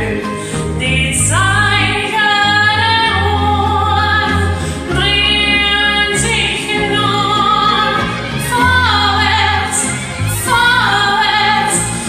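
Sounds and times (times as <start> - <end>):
karaoke backing track with bass: 0.0 - 12.0
woman singing: 0.0 - 12.0.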